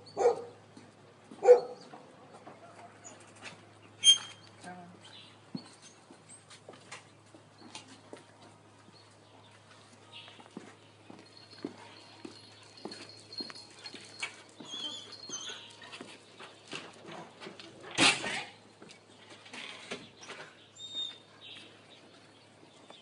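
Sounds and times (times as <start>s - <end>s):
dogs yelping: 0.0s - 0.6s, 1.4s - 1.9s, 12.6s - 16.1s
footsteps on concrete steps: 5.5s - 17.6s
dogs whining: 11.4s - 16.1s.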